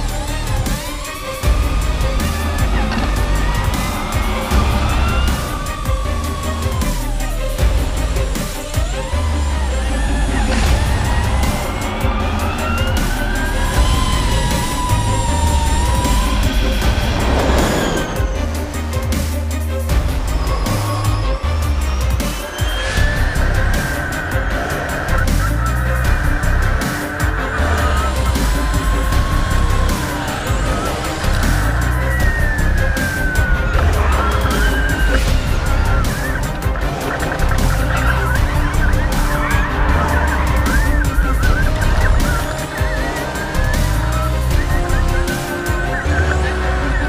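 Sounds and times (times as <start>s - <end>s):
electric race car whining past: 0.0s - 18.9s
car tyres squealing: 0.0s - 47.0s
music with heavy bass beat: 0.0s - 47.0s.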